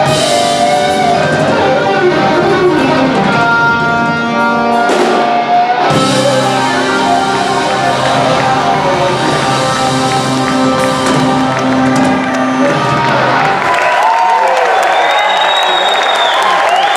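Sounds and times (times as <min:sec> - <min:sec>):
blues-rock band playing: 0:00.0 - 0:13.8
crowd cheering and shouting: 0:00.0 - 0:16.9.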